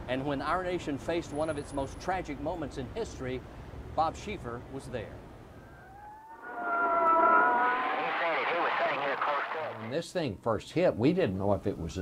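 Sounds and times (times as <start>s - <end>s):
traffic: 0.0s - 9.9s
siren wailing: 5.6s - 9.9s
crowd voices: 6.7s - 9.9s.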